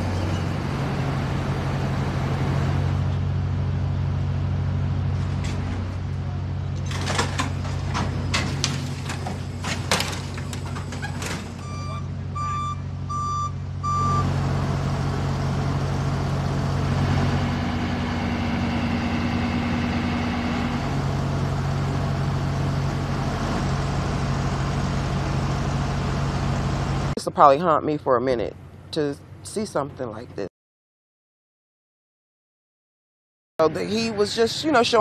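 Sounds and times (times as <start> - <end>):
engine idling hum: 0.0 - 27.2
vehicle reversing alarm beeps: 11.6 - 14.3.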